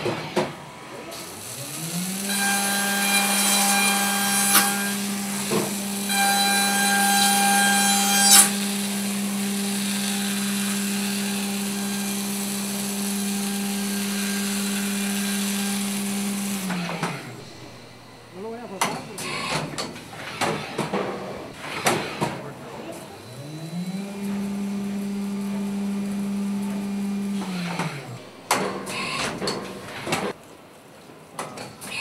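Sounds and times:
milling machine spindle whine: 0:00.2 - 0:30.4.

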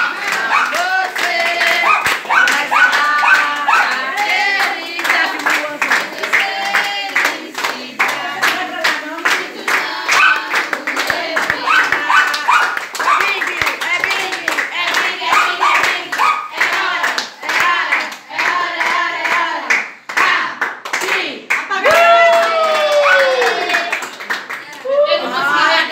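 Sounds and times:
voices singing and chanting: 0:00.0 - 0:23.9, 0:24.8 - 0:25.9
people clapping in time: 0:00.0 - 0:25.5
long falling shout: 0:21.8 - 0:23.9.

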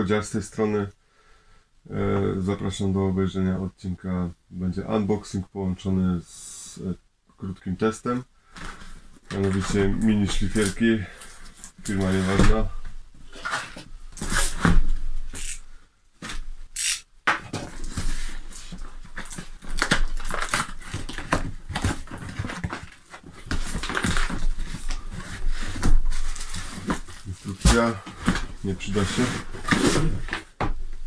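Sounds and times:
cardboard and paper rustling: 0:08.6 - 0:15.6, 0:17.5 - 0:30.6.

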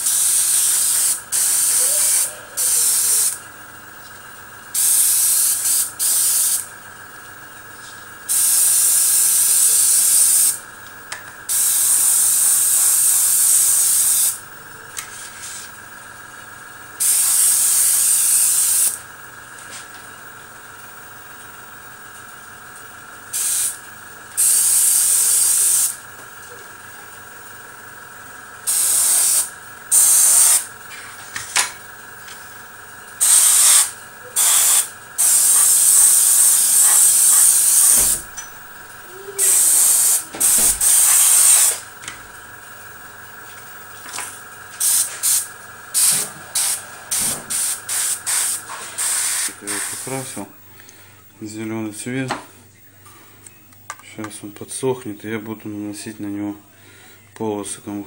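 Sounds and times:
airbrush spraying hiss: 0:00.0 - 0:03.4, 0:04.8 - 0:06.7, 0:08.3 - 0:10.6, 0:11.5 - 0:14.4, 0:15.0 - 0:15.8, 0:17.0 - 0:19.0, 0:23.3 - 0:23.8, 0:24.4 - 0:26.0, 0:28.6 - 0:30.7, 0:33.2 - 0:38.4, 0:39.3 - 0:41.9, 0:44.8 - 0:50.3
compressor humming: 0:00.0 - 0:58.0.

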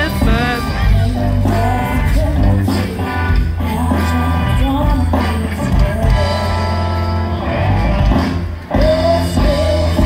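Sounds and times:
person singing: 0:00.0 - 0:07.2, 0:08.7 - 0:10.0
guitar: 0:00.0 - 0:10.0
steady bass: 0:00.0 - 0:10.0.

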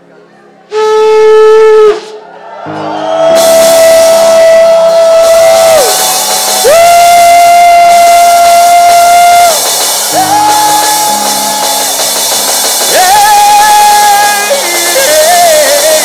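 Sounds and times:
shofar blasts: 0:00.7 - 0:02.2, 0:03.2 - 0:12.0.

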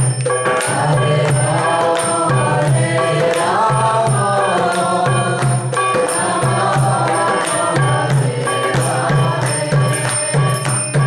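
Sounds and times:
men singing a chant: 0:00.5 - 0:10.6.

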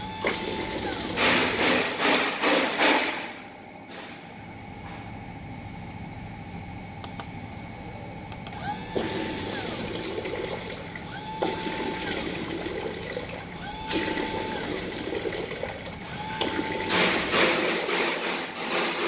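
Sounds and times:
pump hum: 0:00.0 - 0:03.0, 0:07.0 - 0:19.0.

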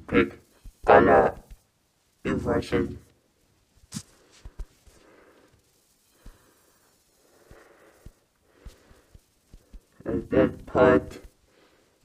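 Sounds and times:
soft breathing: 0:03.9 - 0:10.0, 0:11.2 - 0:12.0.

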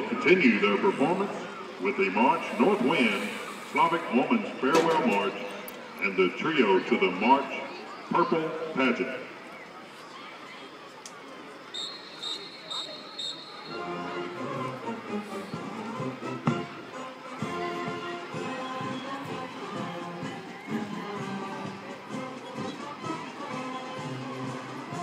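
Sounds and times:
short high whistle blasts: 0:11.8 - 0:13.8
marching band playing: 0:11.8 - 0:25.0.

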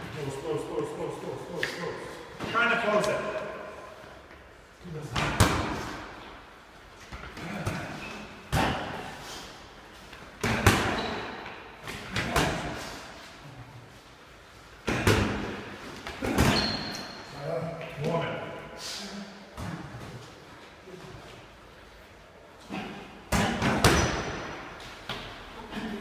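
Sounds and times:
boxing gloves thudding: 0:10.4 - 0:11.2.

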